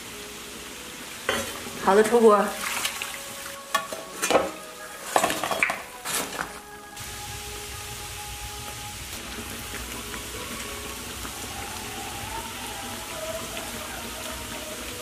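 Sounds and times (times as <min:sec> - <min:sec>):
dough deep-frying in hot oil: 0:00.0 - 0:15.0.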